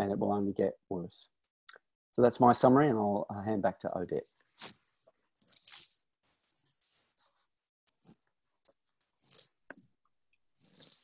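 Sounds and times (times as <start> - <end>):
breathy puffs and sniffs: 4.2 - 9.9, 10.5 - 11.0.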